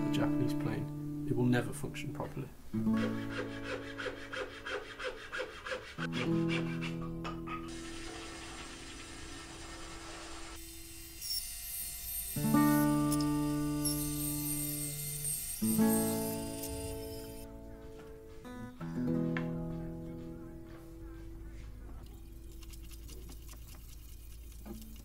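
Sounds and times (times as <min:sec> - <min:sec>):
acoustic guitar chords plucked: 0:16.4 - 0:21.6.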